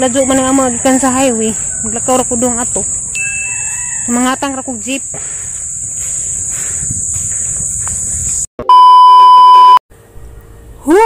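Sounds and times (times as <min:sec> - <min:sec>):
outdoor background noise: 0:00.0 - 0:08.8, 0:09.6 - 0:11.0
loud electronic beep: 0:08.6 - 0:09.8.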